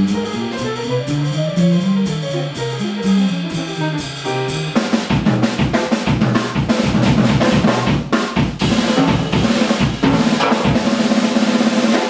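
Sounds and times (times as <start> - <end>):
swung ride cymbal beat: 0.0 - 6.8, 7.4 - 11.7
drum break on snare and bass drum: 0.0 - 12.0.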